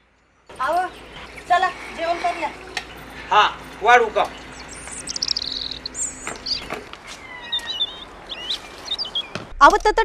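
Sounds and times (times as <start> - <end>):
birds chirping and whistling: 0.3 - 9.5.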